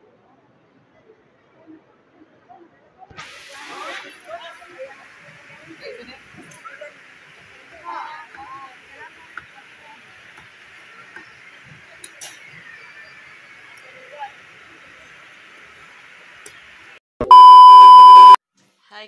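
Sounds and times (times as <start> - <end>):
scattered voices: 1.1 - 16.4
test-pattern beep: 17.2 - 18.4.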